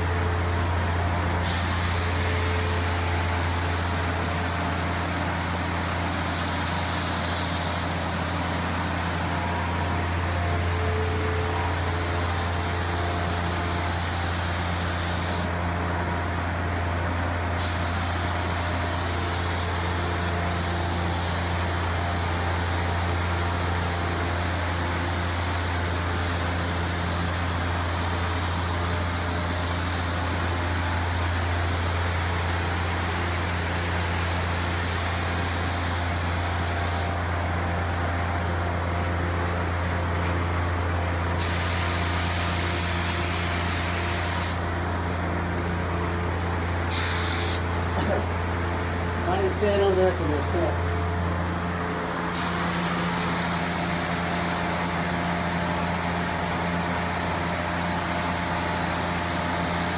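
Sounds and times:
low hum of machinery: 0:00.0 - 0:59.9
spray gun hissing: 0:01.4 - 0:15.6, 0:17.6 - 0:37.2, 0:41.3 - 0:44.6, 0:46.0 - 0:50.6, 0:52.3 - 0:59.9.

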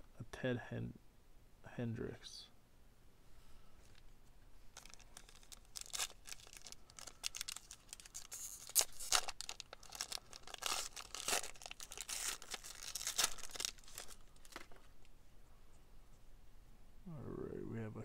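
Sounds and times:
plastic wrapper tearing and crinkling: 0:04.7 - 0:15.0.

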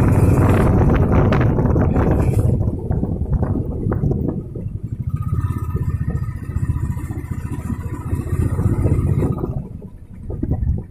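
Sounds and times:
vehicle engine and road rumble: 0:00.0 - 0:10.9.

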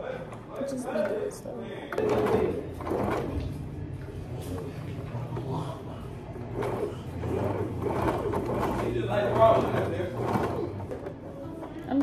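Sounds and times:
sewing machine stitching: 0:01.9 - 0:12.0.

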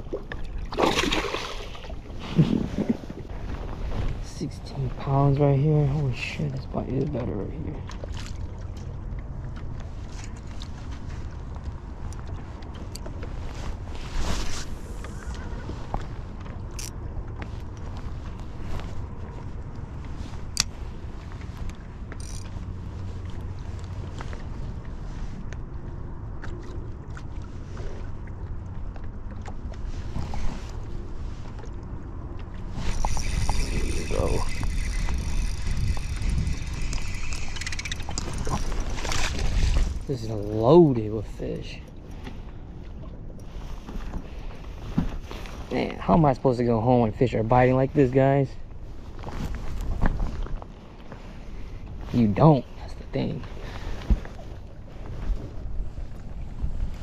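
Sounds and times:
water lapping around boat: 0:00.0 - 0:57.0
wind on microphone: 0:32.7 - 0:40.2, 0:53.9 - 0:57.0
mechanical whirring: 0:33.0 - 0:38.5.

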